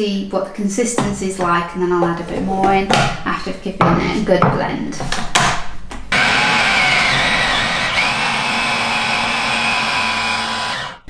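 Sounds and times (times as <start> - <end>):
food processor motor whining: 6.1 - 11.0.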